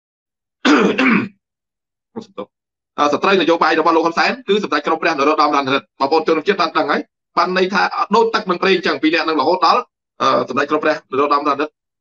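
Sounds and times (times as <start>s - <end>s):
man clearing throat: 0.6s - 1.4s.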